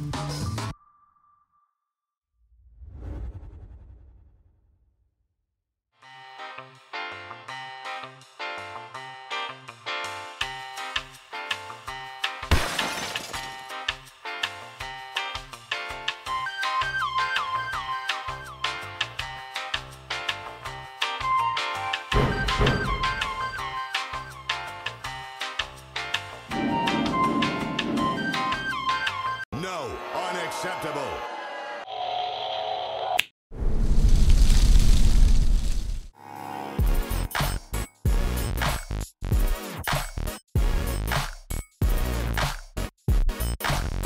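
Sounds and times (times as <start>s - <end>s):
glass shattering crash: 12.5s - 13.7s
background music with steady beat: 13.7s - 29.4s.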